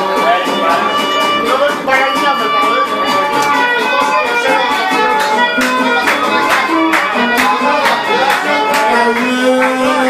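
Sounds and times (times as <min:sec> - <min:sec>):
plucked strings: 0:00.0 - 0:10.0
strummed beat: 0:00.0 - 0:10.0.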